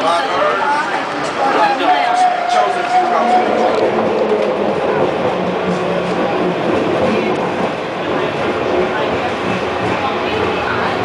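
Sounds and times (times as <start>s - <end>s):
steel wheels on rails: 0.9s - 11.0s.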